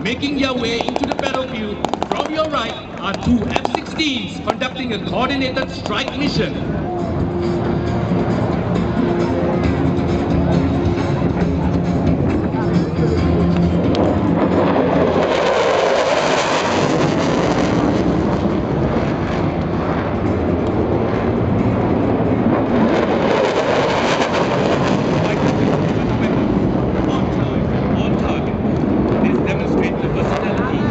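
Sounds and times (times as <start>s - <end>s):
background music: 0.0s - 27.0s
jet engine rushing: 0.0s - 30.9s.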